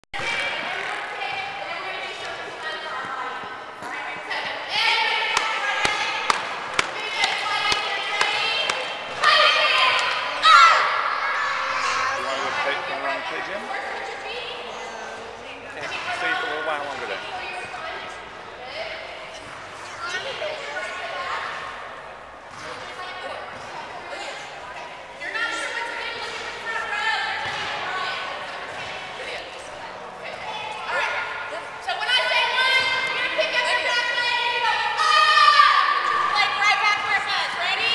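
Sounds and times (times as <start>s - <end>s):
indistinct voices echoing: 0.2s - 37.9s
ball striking court walls: 5.3s - 9.3s
children shouting in a hall: 7.3s - 12.3s, 32.1s - 36.8s.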